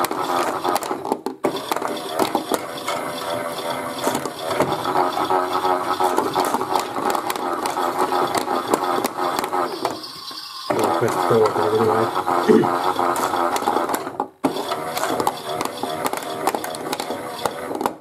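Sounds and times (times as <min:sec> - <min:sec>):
plastic drum rattling and clicking: 0:00.0 - 0:18.0
toy washing machine motor whining: 0:00.0 - 0:18.0.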